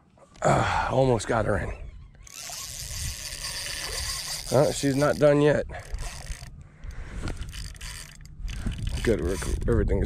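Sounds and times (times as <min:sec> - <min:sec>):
fishing reel drag buzzing: 0:01.8 - 0:10.0.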